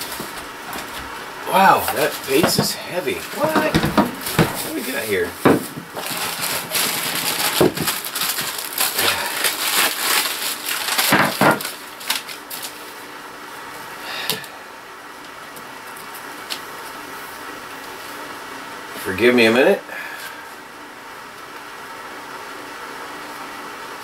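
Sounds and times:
cardboard and paper rustling: 0:00.0 - 0:13.1.

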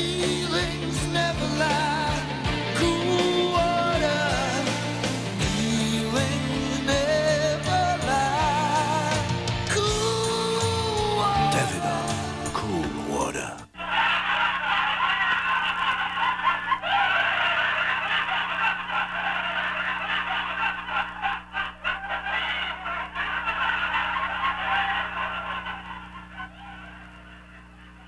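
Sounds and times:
steady low hum: 0:06.4 - 0:28.0
chorus of clucking fowl calls: 0:13.8 - 0:27.0.

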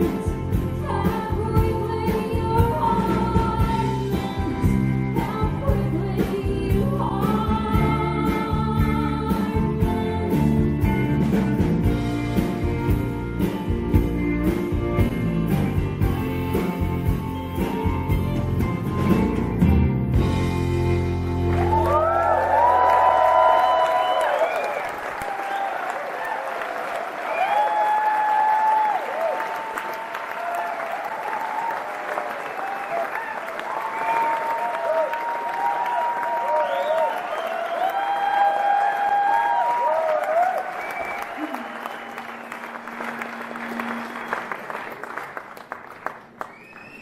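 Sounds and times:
audience applauding and cheering: 0:10.8 - 0:47.0.

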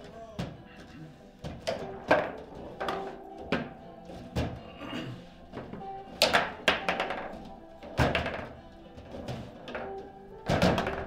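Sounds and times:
background music: 0:00.0 - 0:11.0
foosball knocks: 0:01.4 - 0:04.6, 0:05.6 - 0:11.0.

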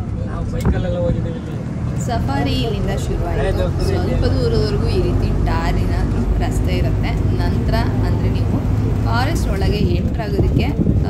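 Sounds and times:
bus engine humming: 0:00.0 - 0:11.0
passengers talking: 0:00.0 - 0:11.0.

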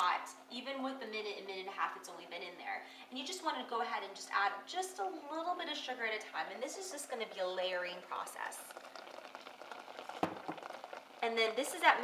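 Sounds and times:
fruit bubbling in a pot: 0:03.3 - 0:12.0
sugar being poured: 0:08.1 - 0:11.9.

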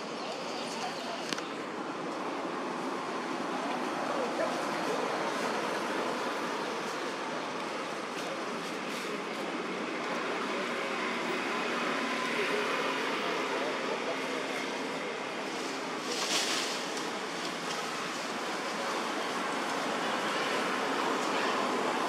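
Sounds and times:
faint indistinct voices: 0:00.0 - 0:22.0
outdoor background noise: 0:00.0 - 0:22.0.

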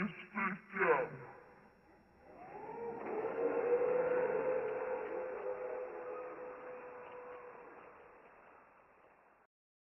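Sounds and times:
voice: 0:00.0 - 0:01.4.

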